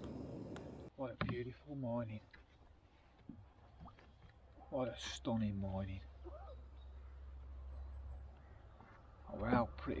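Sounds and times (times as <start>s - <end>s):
distant bird calls: 0.0s - 0.9s, 6.0s - 9.7s.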